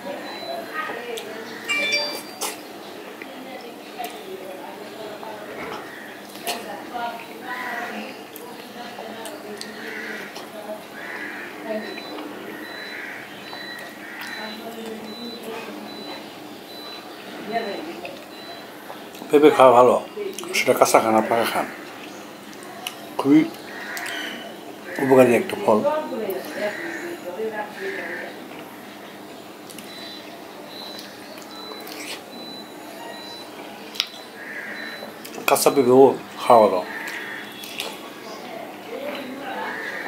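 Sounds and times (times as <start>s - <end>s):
faint steady high tone: 1.6s - 2.7s
man chewing wet mouth sounds: 9.3s - 10.5s, 11.9s - 16.1s, 21.8s - 24.2s, 29.6s - 36.3s, 36.9s - 38.1s
mouth clicks: 29.7s - 35.5s, 37.0s - 38.0s.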